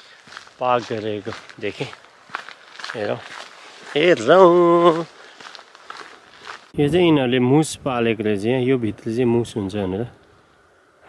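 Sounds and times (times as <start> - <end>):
soft footsteps on trail: 0.0 - 7.0
man talking: 0.6 - 2.0, 2.9 - 3.3, 3.9 - 5.2, 6.7 - 10.2.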